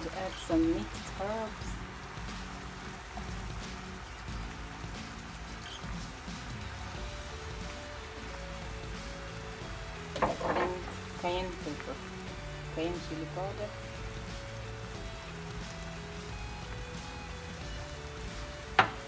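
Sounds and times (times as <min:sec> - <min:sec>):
background music: 0:00.0 - 0:19.0
cream sauce bubbling in a pan: 0:00.2 - 0:19.0.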